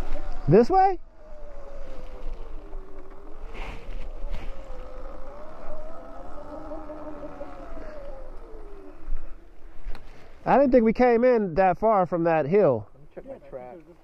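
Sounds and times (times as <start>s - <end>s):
wind rumble on microphone: 0.0s - 10.5s
electric dirt bike motor whining: 0.0s - 10.6s.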